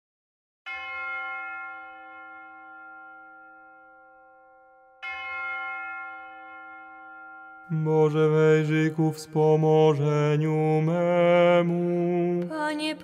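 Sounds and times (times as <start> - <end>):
bell ringing: 0.7 - 9.4.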